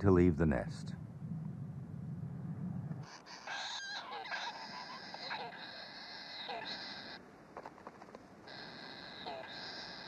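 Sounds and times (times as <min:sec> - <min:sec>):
low hum: 0:00.0 - 0:03.2
kingfishers chirping: 0:03.0 - 0:07.2, 0:08.5 - 0:10.0.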